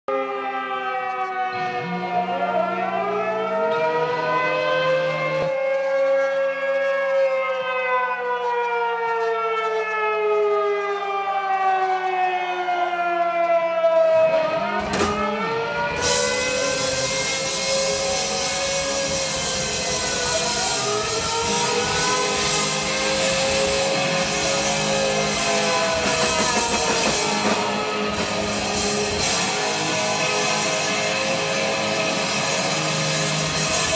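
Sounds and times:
wailing siren-like tones: 0.1s - 33.9s.

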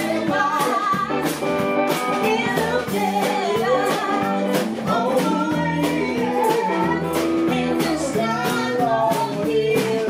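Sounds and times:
guitar: 0.0s - 10.0s
woman singing: 0.0s - 10.0s.

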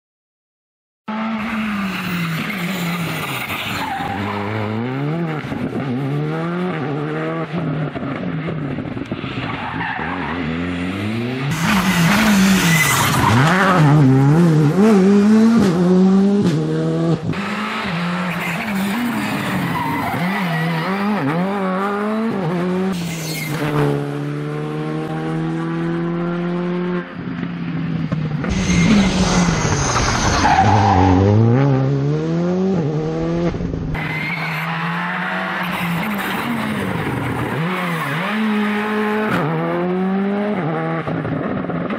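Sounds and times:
rally car engine revving: 1.1s - 41.9s
tyres skidding: 1.3s - 6.2s, 9.0s - 16.0s, 16.6s - 26.0s, 28.0s - 41.4s.

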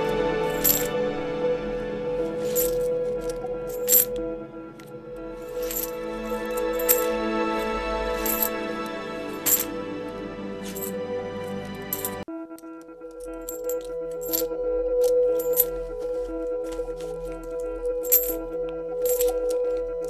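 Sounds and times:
sustained tone music: 0.0s - 20.0s
coins dropping clinks: 0.5s - 1.0s, 2.4s - 4.2s, 5.5s - 7.1s, 8.2s - 8.6s, 9.4s - 9.7s, 10.6s - 10.9s, 11.9s - 12.2s, 13.3s - 15.8s, 17.5s - 18.4s, 19.0s - 19.8s.

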